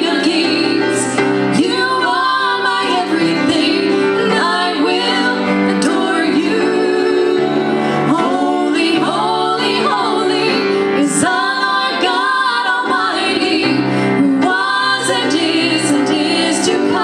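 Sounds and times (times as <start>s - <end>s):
women singing a worship song: 0.0s - 17.0s.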